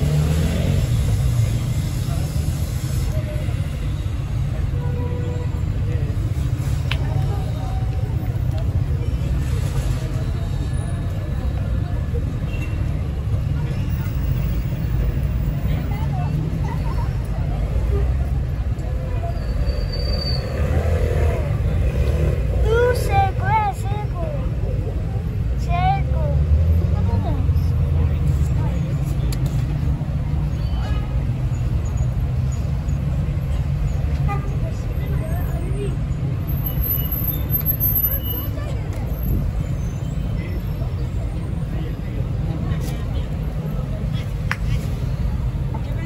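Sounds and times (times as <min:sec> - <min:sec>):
low rumble of road traffic: 0:00.0 - 0:46.0
passers-by voices: 0:00.0 - 0:46.0.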